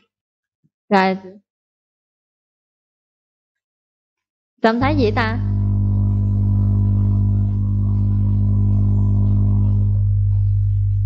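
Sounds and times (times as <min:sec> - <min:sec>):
low electrical mains hum: 0:04.8 - 0:11.0.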